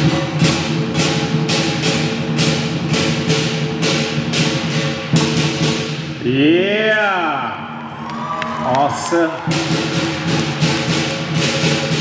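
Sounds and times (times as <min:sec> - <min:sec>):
cymbals clashing: 0:00.0 - 0:06.2, 0:09.4 - 0:12.0
big drum beating: 0:00.0 - 0:06.3, 0:09.3 - 0:12.0.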